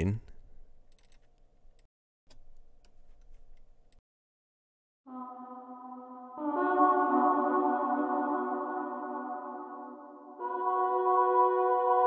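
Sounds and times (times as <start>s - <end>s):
keyboard and mouse clicks: 0.9s - 4.0s.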